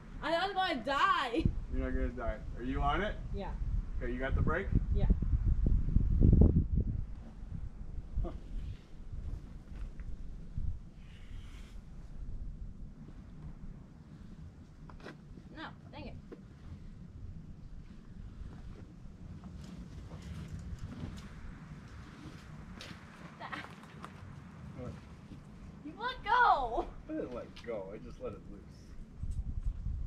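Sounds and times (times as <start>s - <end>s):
wind rumbling on microphone: 1.1s - 30.0s.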